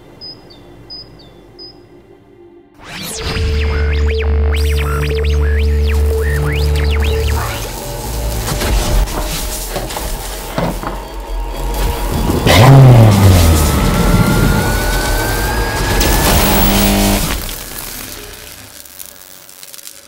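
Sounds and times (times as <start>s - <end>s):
music: 0.1s - 18.5s
thin rising whine: 11.4s - 17.6s
low falling tone: 11.6s - 17.6s.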